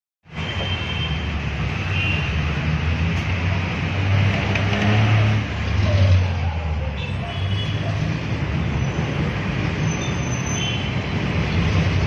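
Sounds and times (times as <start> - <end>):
road and traffic noise: 0.2 - 12.0.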